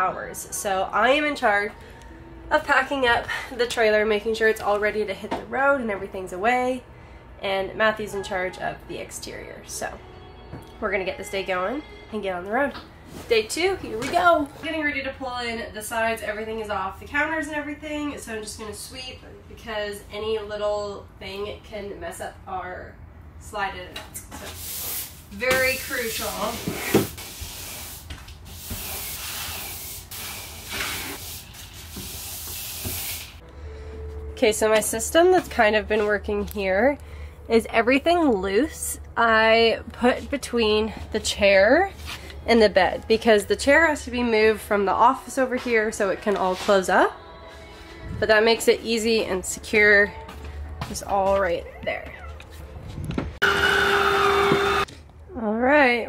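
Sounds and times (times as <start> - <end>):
broom sweeping hard floor: 24.3 - 33.4
electric motor whine: 53.4 - 54.9.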